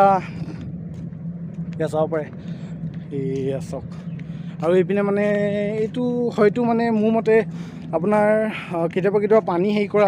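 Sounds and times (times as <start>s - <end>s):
low hum: 0.0s - 10.0s
man speaking: 3.1s - 4.0s, 4.6s - 10.0s.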